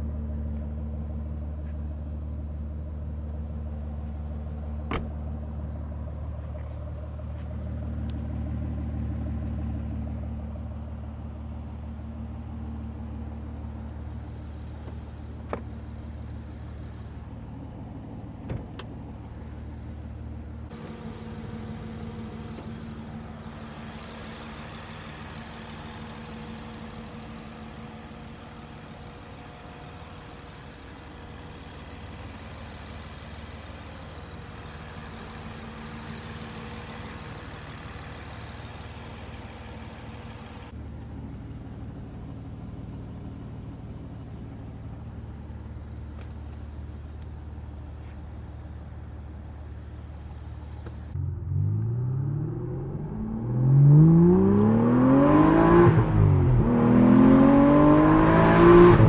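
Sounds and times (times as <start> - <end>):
engine bay whirr and hiss: 0.0 - 51.2
car engine idling: 0.0 - 51.8.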